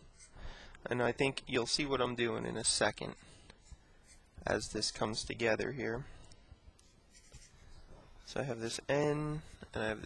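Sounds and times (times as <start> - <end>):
marker scratching on paper: 0.0 - 0.4, 2.6 - 4.8, 6.8 - 9.6.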